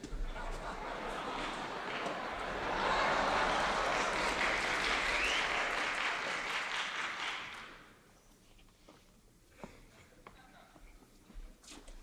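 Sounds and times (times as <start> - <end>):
audience applauding: 0.4 - 8.0.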